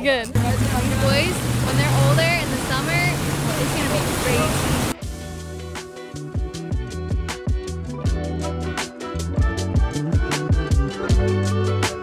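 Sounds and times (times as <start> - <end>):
boat engine hum: 0.3 - 5.1
rush of wind and water: 0.4 - 5.0.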